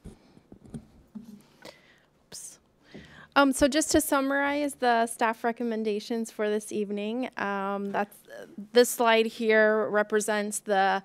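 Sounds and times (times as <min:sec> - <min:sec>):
soft knocks and rubs on microphone: 0:00.0 - 0:01.6.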